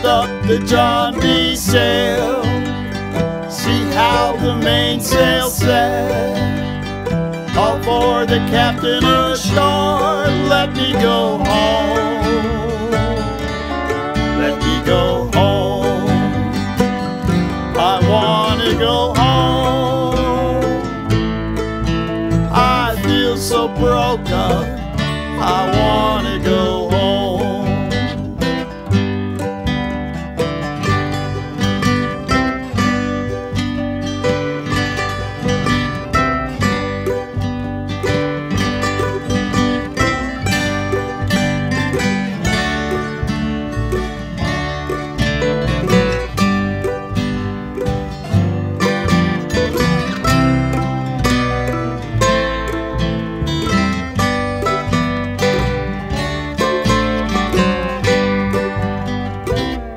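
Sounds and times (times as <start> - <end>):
picked lead guitar line: 0.0 - 59.9
strummed acoustic guitar: 0.0 - 59.9.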